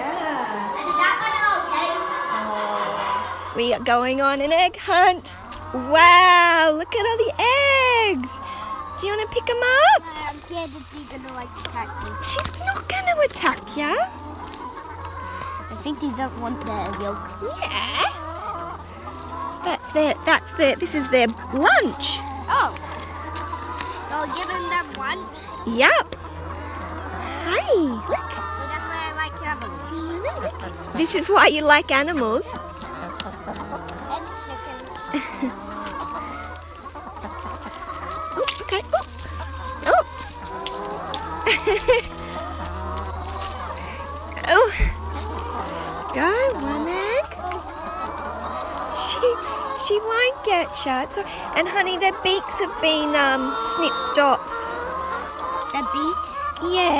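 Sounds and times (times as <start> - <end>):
hens clucking: 0.0 - 56.9.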